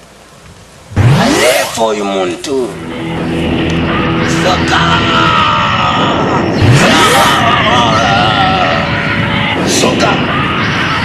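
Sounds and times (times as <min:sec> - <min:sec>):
person making wavering cries: 0:03.8 - 0:11.0.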